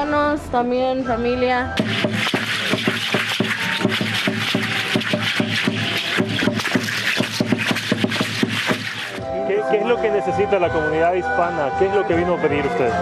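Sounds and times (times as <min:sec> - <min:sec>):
drum strikes in fast steady beat: 0:01.8 - 0:09.2.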